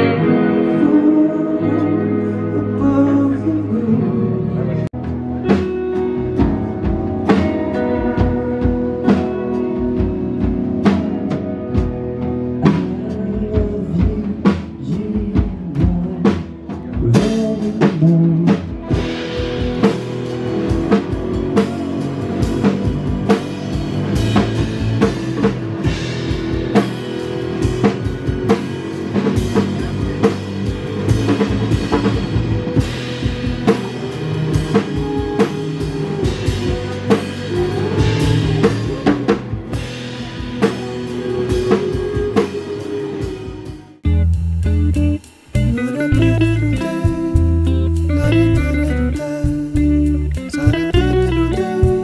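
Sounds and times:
electric guitars: 0:00.0 - 0:52.0
live rock band playing: 0:00.0 - 0:52.0
drum kit beat: 0:05.0 - 0:52.0
cymbals: 0:18.9 - 0:52.0.

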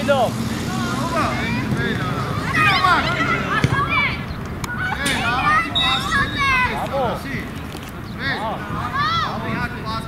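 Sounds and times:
young footballers shouting: 0:00.6 - 0:07.5, 0:08.2 - 0:10.0.

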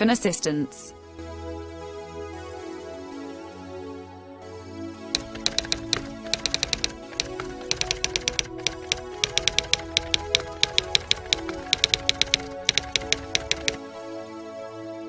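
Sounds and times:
typewriter key clicks: 0:05.2 - 0:13.8.

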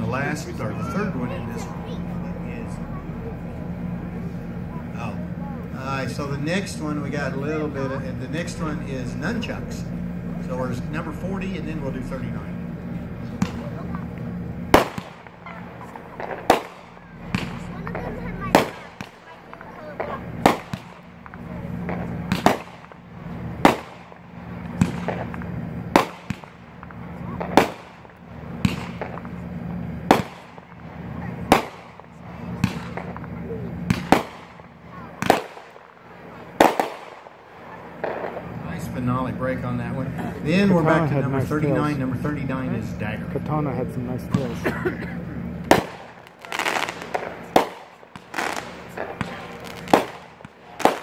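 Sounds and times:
firework shells banging: 0:00.0 - 0:41.9, 0:44.3 - 0:51.0.

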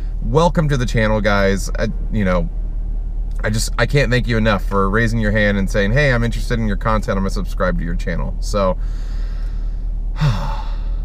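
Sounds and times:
steady low hum: 0:00.0 - 0:11.0
man sighing: 0:08.8 - 0:11.0.

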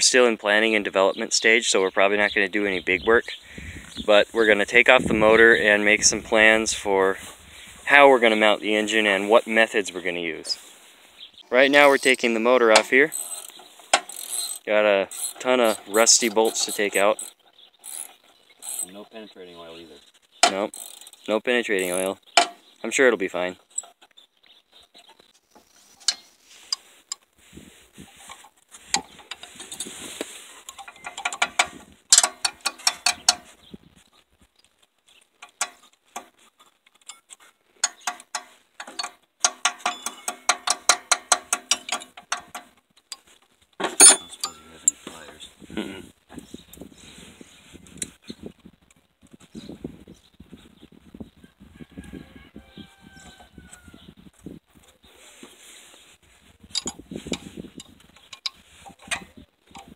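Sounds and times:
ratcheting wrench clicking: 0:13.1 - 0:18.9, 0:20.4 - 0:21.2, 0:30.7 - 0:33.5, 0:36.9 - 0:43.3, 0:56.8 - 0:59.9
sharp metal clank: 0:39.0 - 0:42.5, 0:43.9 - 0:44.9.

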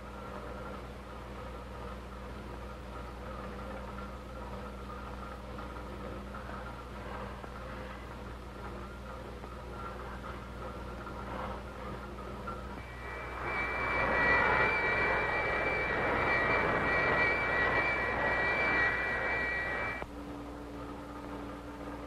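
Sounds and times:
steady high whine: 0:08.2 - 0:20.3
jet-like rushing noise: 0:12.8 - 0:20.0.

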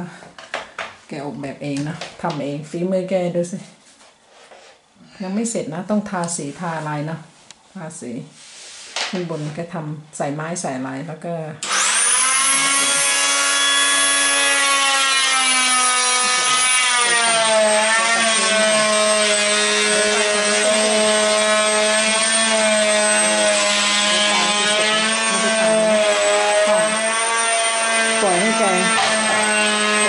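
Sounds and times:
electric saw cutting wood: 0:11.6 - 0:30.0.

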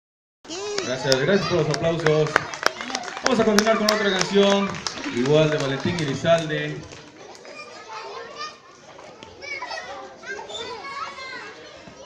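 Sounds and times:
children chattering and calling out: 0:00.4 - 0:12.0.

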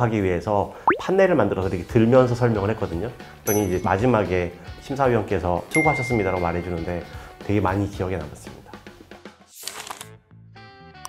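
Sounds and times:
held chime-like note: 0:03.5 - 0:04.4, 0:05.7 - 0:07.2.

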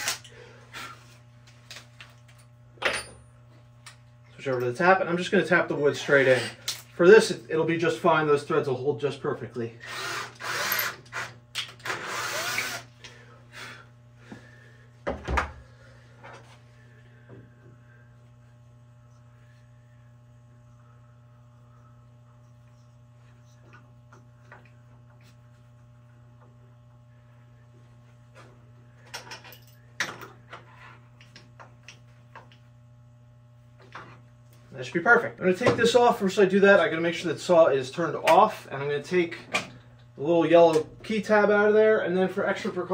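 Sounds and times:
cordless drill into wood: 0:00.0 - 0:00.2, 0:09.8 - 0:12.9
low steady hum: 0:00.0 - 0:42.9.

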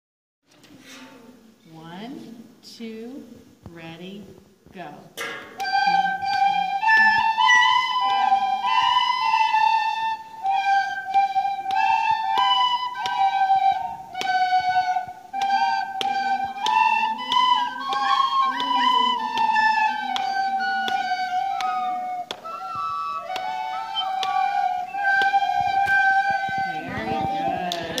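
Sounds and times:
children playing tin whistles: 0:05.6 - 0:28.0.

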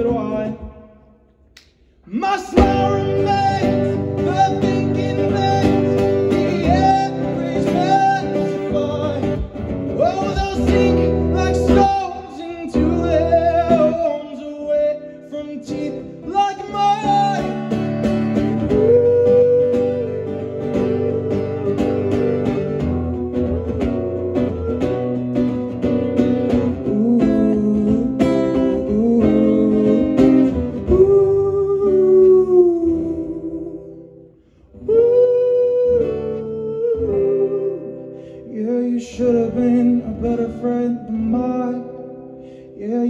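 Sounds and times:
person singing: 0:02.1 - 0:34.1, 0:34.8 - 0:42.2
acoustic guitar strumming: 0:02.2 - 0:34.2.

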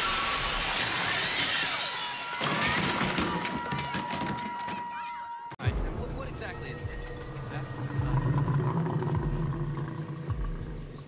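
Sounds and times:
falling glass shards: 0:00.0 - 0:03.4
glass window shattering: 0:00.0 - 0:03.6.

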